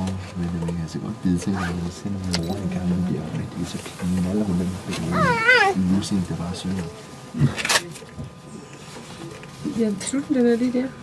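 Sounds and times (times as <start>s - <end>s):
leopard cub mewing: 5.0s - 5.9s.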